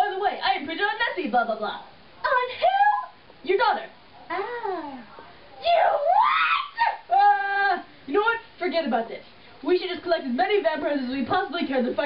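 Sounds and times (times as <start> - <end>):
person screaming: 5.6 - 7.7.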